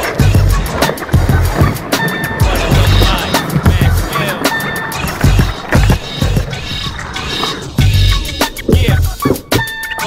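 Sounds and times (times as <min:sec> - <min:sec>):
hip-hop backing track: 0:00.0 - 0:10.0
skateboard clacks: 0:00.0 - 0:10.0
skateboard wheels rolling on concrete: 0:00.0 - 0:10.0.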